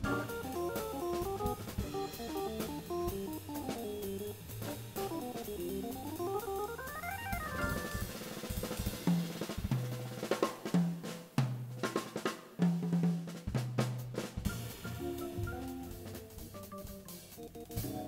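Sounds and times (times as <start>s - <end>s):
jazz organ run: 0.0s - 10.3s, 13.9s - 18.0s
drum kit playing: 0.0s - 18.0s.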